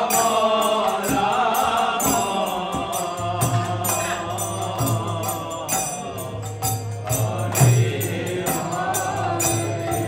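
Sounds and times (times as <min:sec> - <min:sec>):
group chanting devotional song: 0:00.0 - 0:10.0
harmonium: 0:00.0 - 0:10.0.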